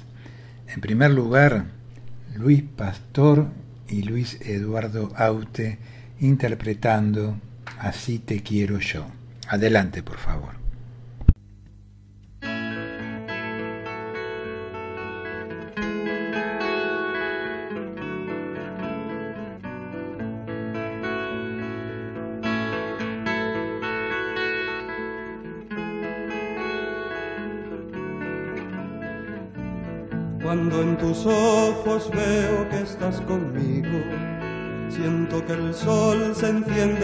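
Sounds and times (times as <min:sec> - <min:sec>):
guitar ballad music: 0:00.0 - 0:11.4, 0:12.2 - 0:37.0.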